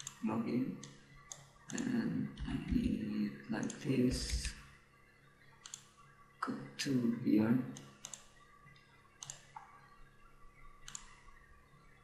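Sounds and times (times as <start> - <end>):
computer mouse clicks: 0.0 - 0.2, 0.8 - 2.9, 3.6 - 4.6, 5.6 - 5.9, 7.8 - 9.7, 10.8 - 11.2.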